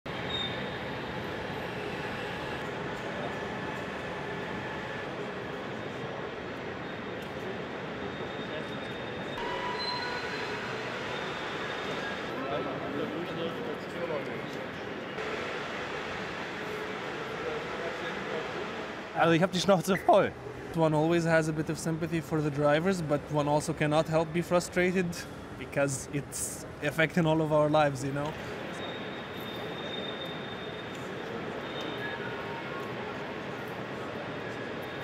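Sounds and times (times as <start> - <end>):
echoing station hall hum: 0.1 - 35.0.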